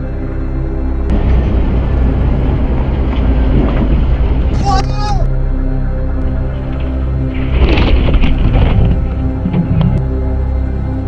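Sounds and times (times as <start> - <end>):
vehicle rolling over rumbling: 1.1 - 4.6, 6.5 - 10.1
person crying out: 4.5 - 5.3.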